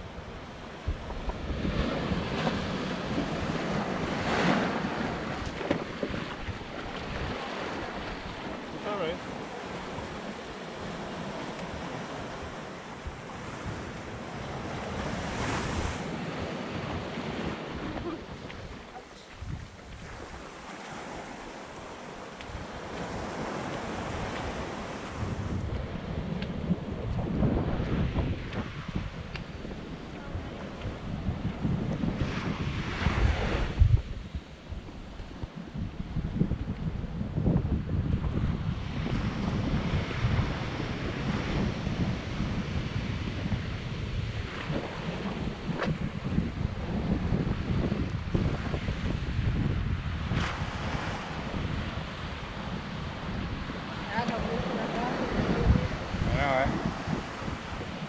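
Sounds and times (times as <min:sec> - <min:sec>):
surf washing up a beach: 0:00.0 - 0:58.0
wind buffeting the microphone: 0:00.0 - 0:58.0.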